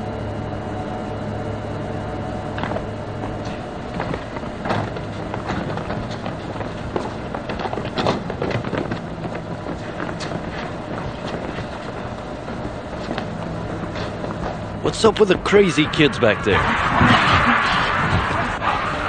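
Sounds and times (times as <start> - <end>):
stopped train humming: 0.0 - 19.0
footsteps: 2.6 - 19.0.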